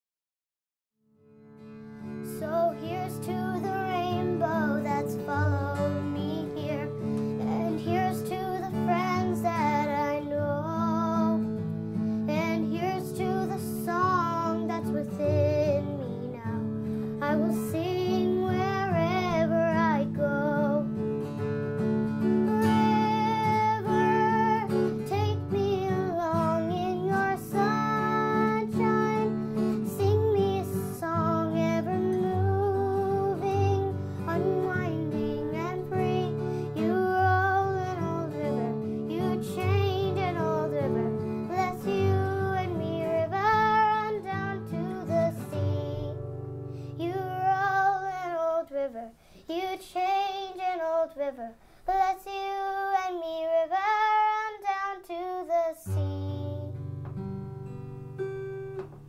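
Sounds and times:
acoustic guitar: 1.2 - 59.0
person singing: 2.1 - 11.5, 12.1 - 21.0, 22.2 - 46.2, 46.8 - 56.8.

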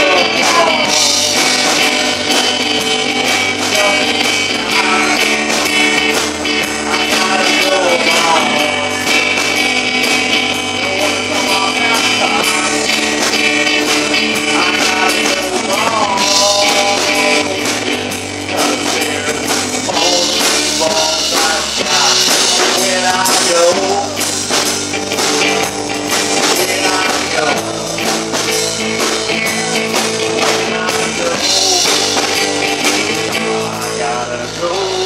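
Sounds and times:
bass guitar: 0.0 - 35.0
drum kit: 0.0 - 35.0
man singing: 0.0 - 35.0
strummed acoustic guitar: 0.0 - 35.0.

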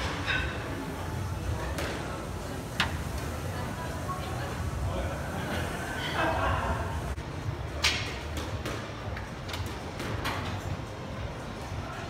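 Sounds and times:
squash ball smacking racket and walls: 7.8 - 10.6.

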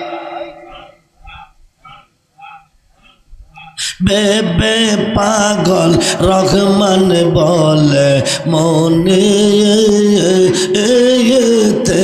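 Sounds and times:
dog barking: 0.7 - 3.8.

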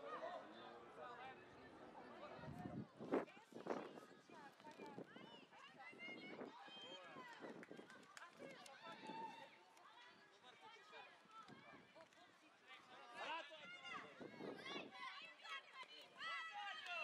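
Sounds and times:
children calling and shouting: 2.3 - 17.0.

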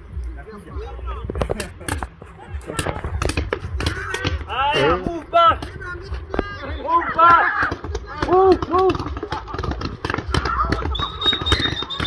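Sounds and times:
paintball markers firing: 2.7 - 4.9, 7.2 - 12.0.

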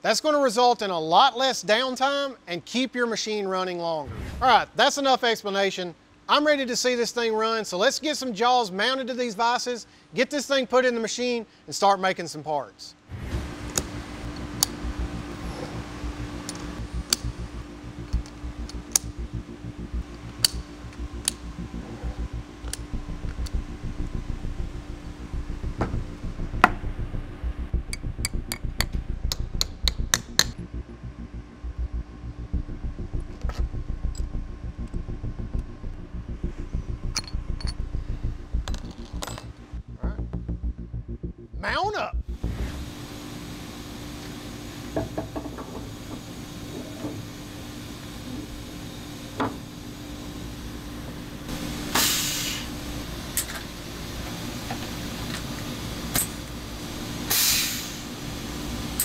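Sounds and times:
low background hum: 0.0 - 59.0.

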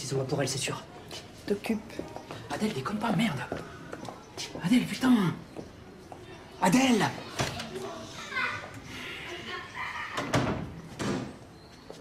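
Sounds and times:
children playing: 5.0 - 11.4.

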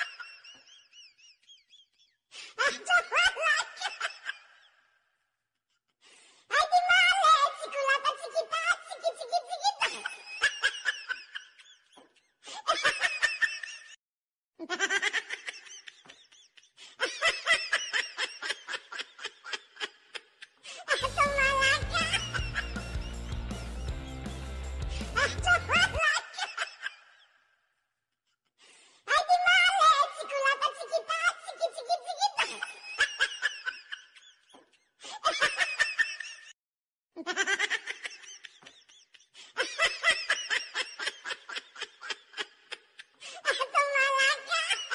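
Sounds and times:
high-pitched laughter: 0.0 - 4.8, 6.5 - 14.0, 14.6 - 23.6, 24.9 - 27.4, 29.1 - 36.6, 37.2 - 44.9.

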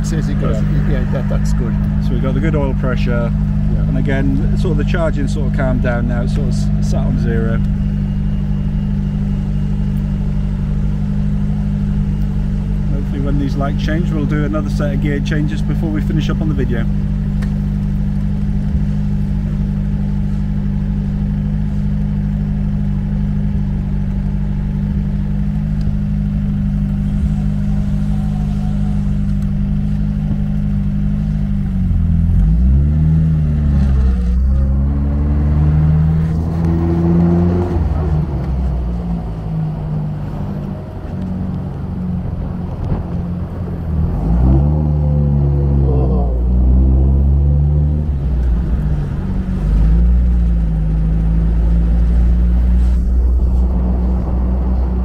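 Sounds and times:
car engine idling and revving: 0.0 - 55.0.

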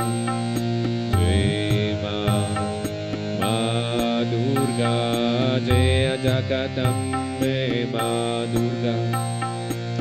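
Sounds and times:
harmonium melody: 0.0 - 10.0
reed drone: 0.0 - 10.0.

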